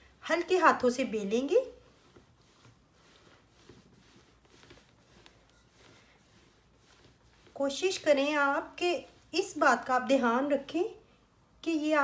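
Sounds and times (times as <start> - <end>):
rolling pin swishing on dough: 0.0 - 11.0.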